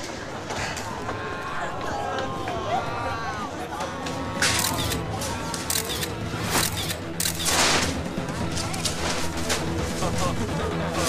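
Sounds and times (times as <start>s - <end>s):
indistinct voices: 0.0s - 7.4s
steady background noise: 0.0s - 11.0s.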